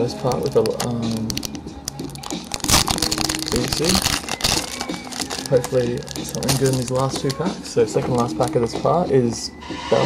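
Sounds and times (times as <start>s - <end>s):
foil wrapper crinkling: 0.2s - 8.7s.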